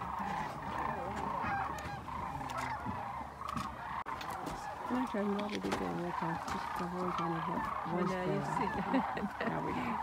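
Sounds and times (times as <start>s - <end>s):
cranes calling in flight: 0.0s - 10.0s.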